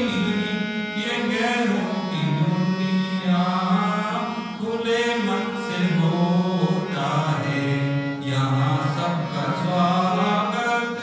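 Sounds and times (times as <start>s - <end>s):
harmonium: 0.0s - 11.0s
man singing into a microphone: 0.0s - 11.0s.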